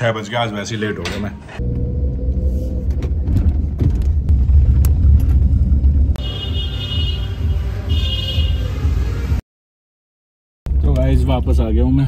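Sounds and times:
car engine and tyre rumble: 0:00.3 - 0:07.0, 0:10.7 - 0:12.0.

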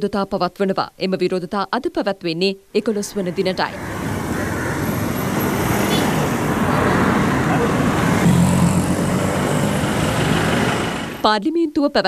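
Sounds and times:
passing cars and buses: 0:02.6 - 0:11.4
low engine drone: 0:02.8 - 0:11.2.

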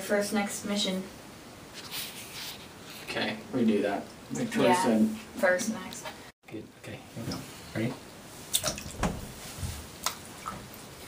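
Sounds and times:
feet splashing in bathtub water: 0:08.5 - 0:11.0.

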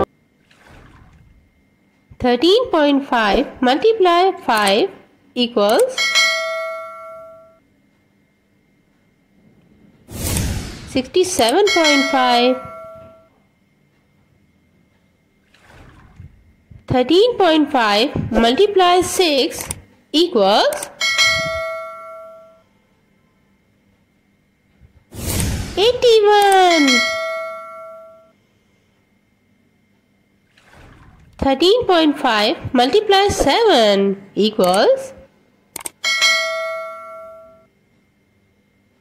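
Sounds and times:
bell ding: 0:05.9 - 0:07.6, 0:11.6 - 0:13.3, 0:21.0 - 0:22.6, 0:26.5 - 0:28.3, 0:36.0 - 0:37.7
notification bell chime: 0:11.6 - 0:13.2, 0:26.5 - 0:28.3
quick clicks: 0:35.7 - 0:36.0.

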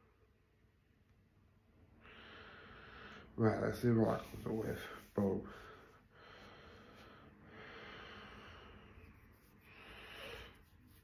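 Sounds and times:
soft breathing through the nose: 0:01.9 - 0:11.0.

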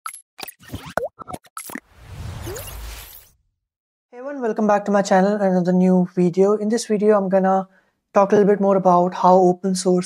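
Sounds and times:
cartoon pop and bloop effects: 0:00.4 - 0:01.8.

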